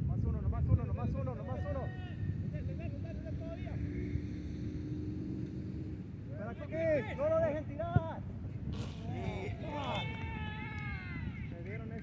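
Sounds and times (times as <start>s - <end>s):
wind noise on microphone: 0.0s - 6.2s.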